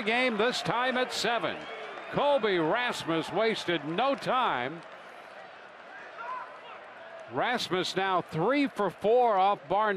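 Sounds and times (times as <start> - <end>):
stadium crowd hum: 0.0 - 9.9.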